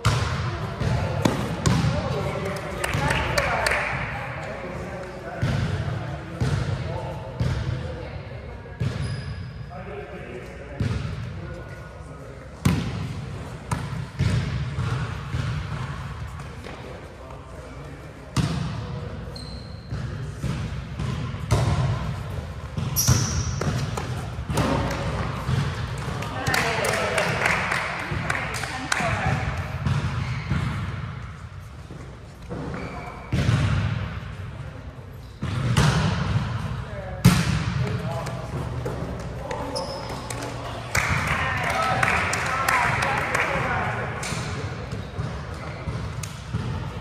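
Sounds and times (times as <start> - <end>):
players' voices: 0.0 - 30.8, 32.4 - 47.0
sneakers squeaking on court: 8.8 - 9.7, 18.4 - 26.1, 29.3 - 31.0, 31.6 - 33.9, 38.5 - 40.8.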